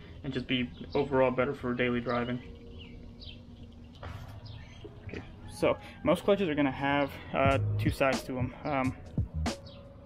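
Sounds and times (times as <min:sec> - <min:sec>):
faint bird chirps: 0:00.3 - 0:06.1.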